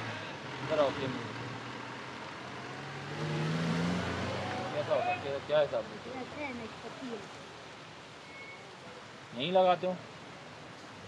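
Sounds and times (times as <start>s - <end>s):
vehicle engine accelerating: 0.0s - 5.3s.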